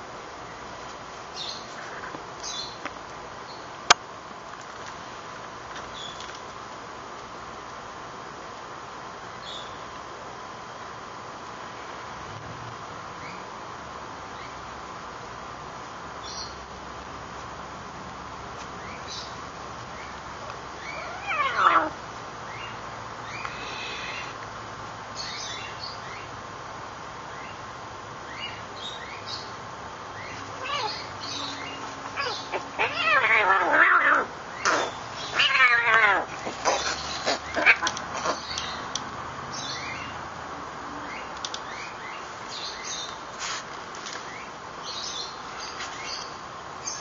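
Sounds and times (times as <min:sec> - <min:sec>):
kitten meowing: 0:30.6 - 0:31.1, 0:32.2 - 0:34.3.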